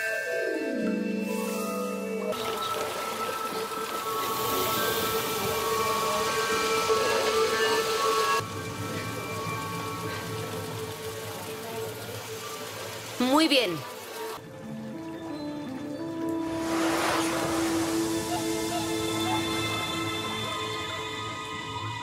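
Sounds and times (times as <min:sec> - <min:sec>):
music of sustained held tones: 0:00.0 - 0:13.2, 0:14.1 - 0:22.0
rain-like hiss: 0:01.2 - 0:22.0.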